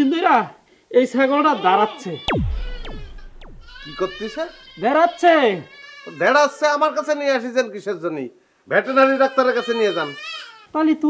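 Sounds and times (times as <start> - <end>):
falling swoop sound effect: 2.3 - 4.8
low rumble: 2.3 - 4.8.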